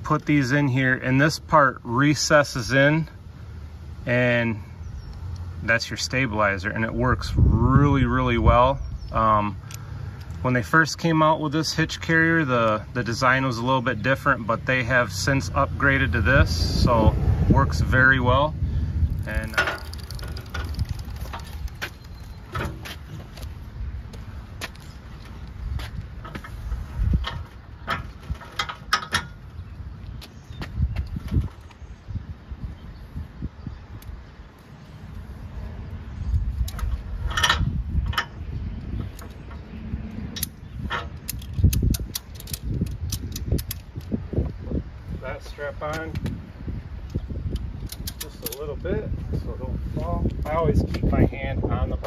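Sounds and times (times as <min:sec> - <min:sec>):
wind buffeting microphone: 0:06.6 - 0:10.4, 0:14.1 - 0:52.0
metallic clanks and rattles: 0:19.1 - 0:23.4, 0:26.2 - 0:29.6, 0:36.6 - 0:44.1.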